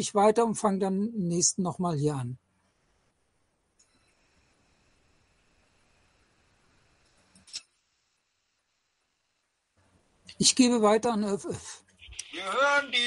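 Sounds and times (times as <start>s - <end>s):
faint audio line hiss: 0.0s - 13.0s.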